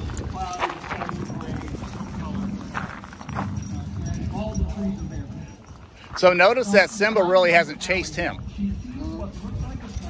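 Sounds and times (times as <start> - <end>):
dogs scuffling on gravel: 0.0 - 4.4
faint voices: 0.0 - 10.0.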